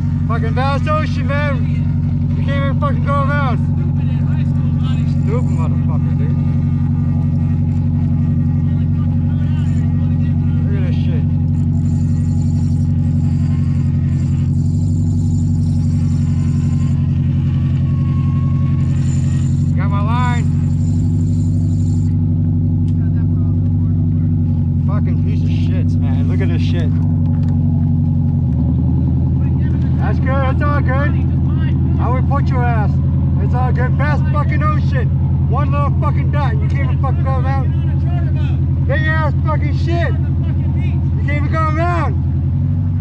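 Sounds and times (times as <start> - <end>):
boat engine droning: 0.0 - 43.0.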